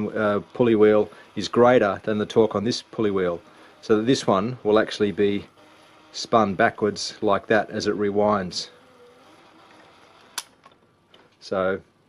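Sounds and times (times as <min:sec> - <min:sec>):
tape reels running in rewind: 0:00.0 - 0:10.8
sharp click: 0:10.3 - 0:10.8.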